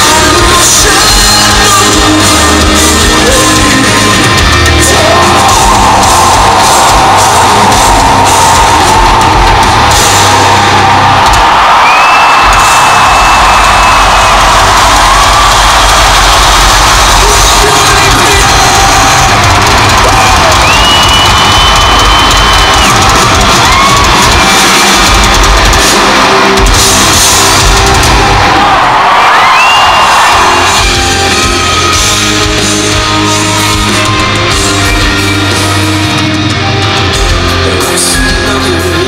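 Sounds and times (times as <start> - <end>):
crowd cheering and yelling: 0.0 - 39.0
shrill whistles: 11.6 - 14.5, 20.1 - 24.8, 29.2 - 31.0.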